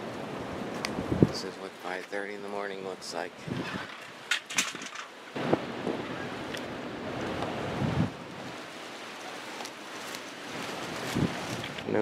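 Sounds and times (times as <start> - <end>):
wind buffeting microphone: 0.0 - 1.5, 3.4 - 8.9, 10.5 - 12.0.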